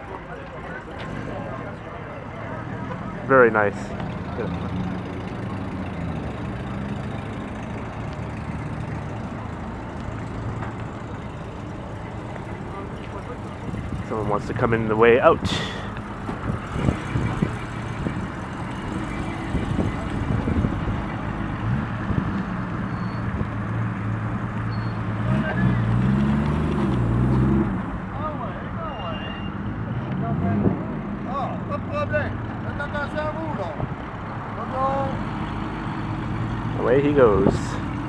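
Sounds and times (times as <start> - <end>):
car engine running low: 0.2 - 28.2.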